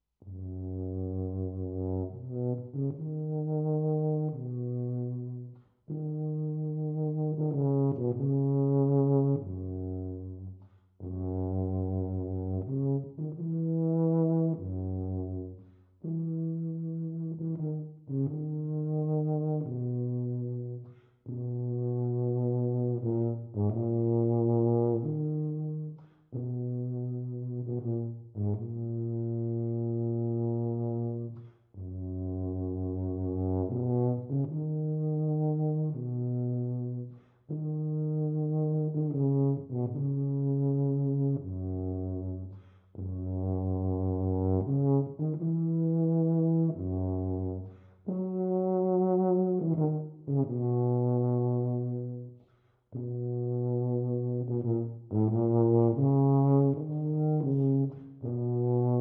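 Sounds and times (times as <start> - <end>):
solo tuba melody: 0.2 - 59.0.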